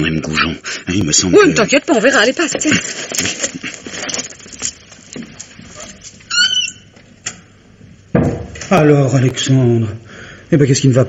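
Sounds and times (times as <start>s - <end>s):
door hinge squeaking: 6.3s - 7.0s.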